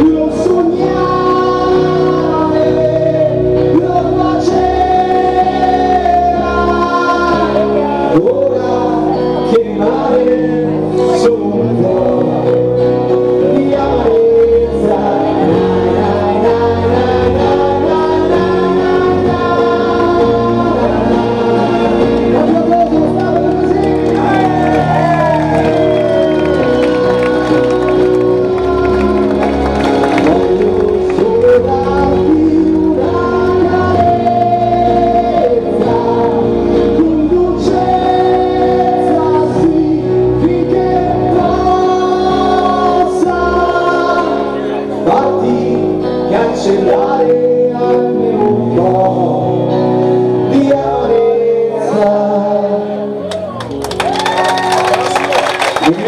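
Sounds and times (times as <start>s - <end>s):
keyboard and guitar chord ringing: 0.0s - 54.0s
live band playing acoustic pop: 0.0s - 56.0s
audience cheering: 21.4s - 31.5s, 53.2s - 56.0s.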